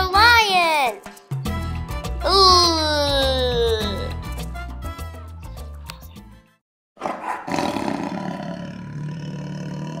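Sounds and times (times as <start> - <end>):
children's background music: 0.0 - 6.6
lion roaring: 7.0 - 10.0.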